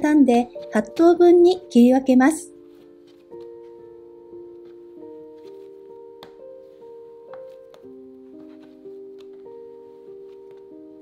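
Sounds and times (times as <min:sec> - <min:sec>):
slow sustained keyboard music: 0:00.0 - 0:11.0.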